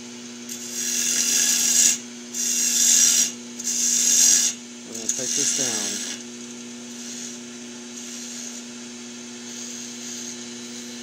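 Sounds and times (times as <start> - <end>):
steady hum: 0.0 - 11.0
turning tool cutting wood: 0.5 - 6.3, 6.9 - 8.7, 9.4 - 11.0.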